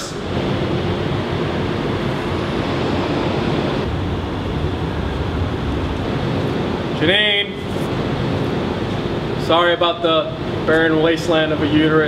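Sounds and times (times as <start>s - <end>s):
faint steady hum: 0.0s - 12.0s
low rumble and hiss: 0.0s - 12.0s.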